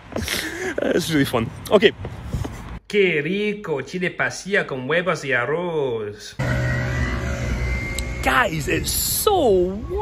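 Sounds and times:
street traffic noise: 0.0 - 4.5, 6.3 - 10.0
background music: 6.4 - 10.0.

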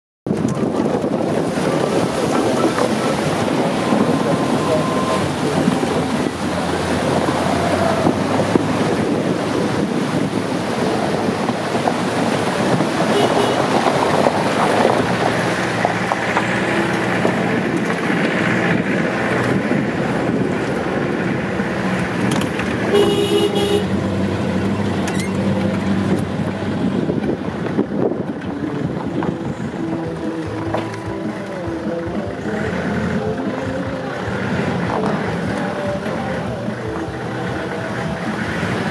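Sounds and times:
wind noise on microphone: 0.2 - 38.9
truck engine running: 0.3 - 38.9
water splashing and rushing: 0.3 - 38.9.

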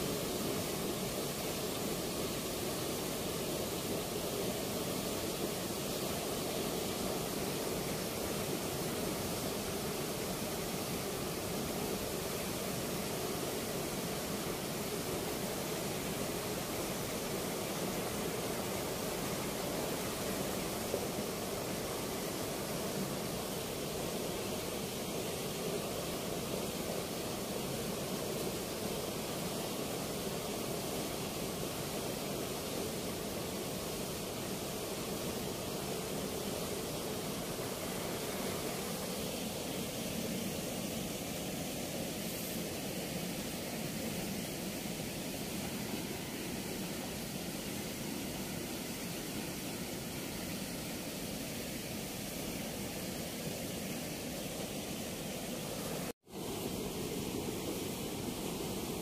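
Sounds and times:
water rushing through sluice gate: 0.0 - 59.0.

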